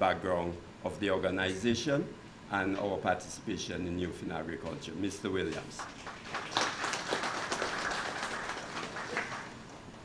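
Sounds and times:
audience applauding: 5.8 - 9.7.

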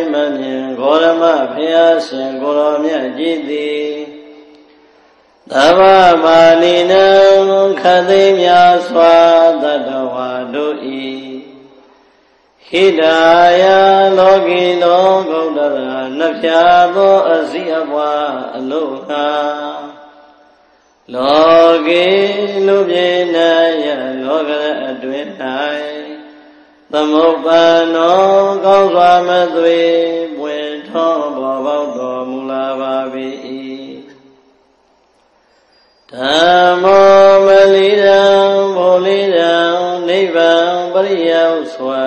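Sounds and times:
person chanting: 0.0 - 4.5, 5.5 - 11.8, 12.6 - 20.3, 21.1 - 34.3, 36.1 - 42.0.

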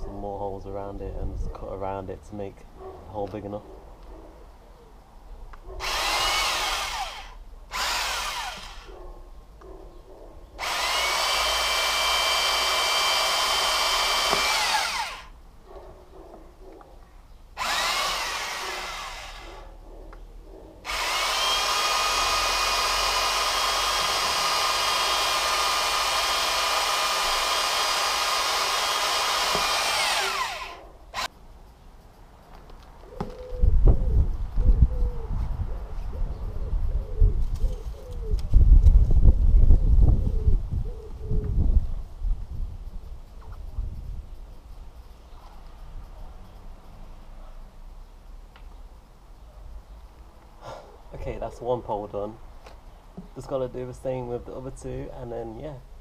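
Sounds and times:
cordless drill boring rubber: 5.8 - 8.9, 10.6 - 15.4, 17.6 - 19.7, 20.9 - 31.3.

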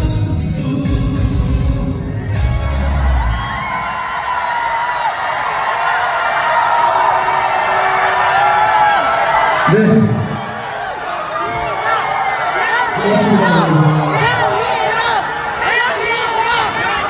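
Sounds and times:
live song with heavy bass beat: 0.0 - 3.8
audience cheering and screaming: 1.9 - 17.0.

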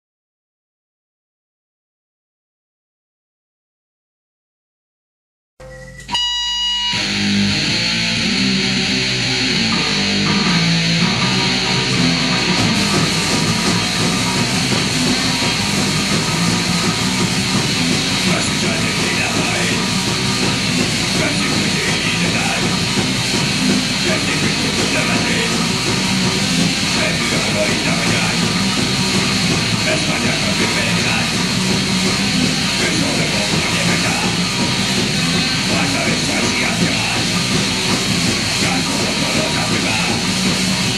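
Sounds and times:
punk rock song: 5.8 - 40.9.

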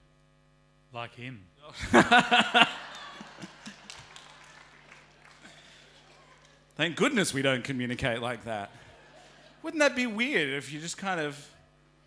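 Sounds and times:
man laughing into a microphone: 1.7 - 4.0
congregation laughing: 1.7 - 10.3.

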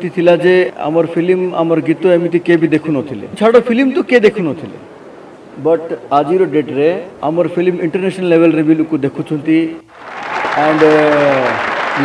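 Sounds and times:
man speaking into a microphone: 0.0 - 4.9, 5.6 - 9.9, 10.6 - 12.0
audience applause: 9.9 - 12.0.

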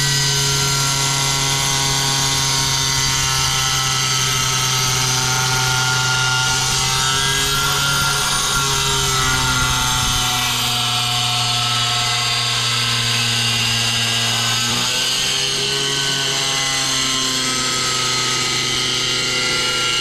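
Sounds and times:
angle grinder cutting tile: 0.0 - 20.0.

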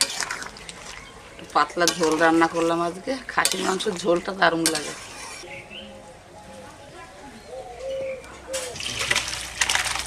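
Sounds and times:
dove cooing: 5.4 - 8.9.

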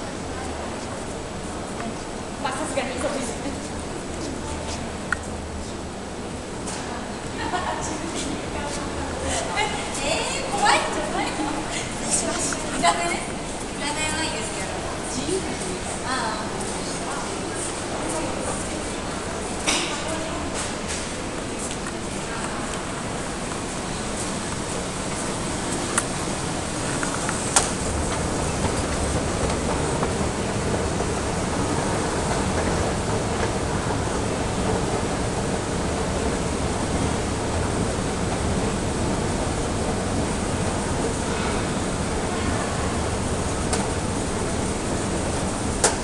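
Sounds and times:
escalator mechanical hum: 0.0 - 46.0.

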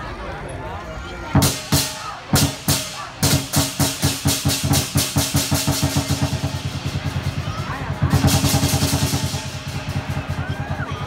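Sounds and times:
drum cymbals and gong rhythm: 1.4 - 11.0.

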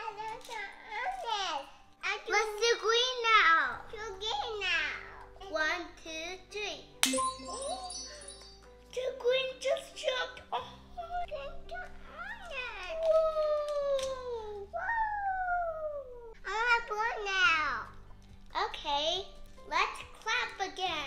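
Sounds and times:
background music: 0.0 - 21.0
hand clap: 7.0 - 7.4
high twinkling chime: 7.1 - 8.8.

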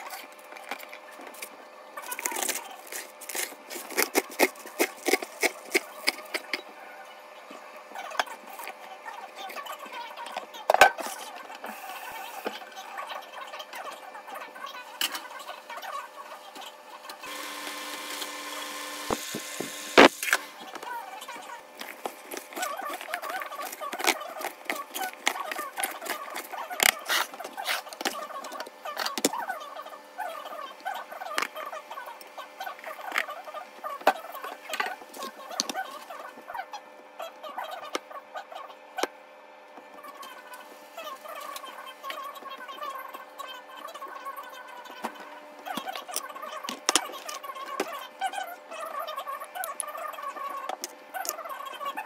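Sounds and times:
small motor humming: 16.4 - 36.4.

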